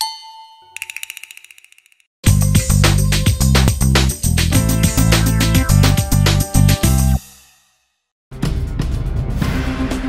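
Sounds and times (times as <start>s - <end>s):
bright chime ringing: 0.0s - 1.2s.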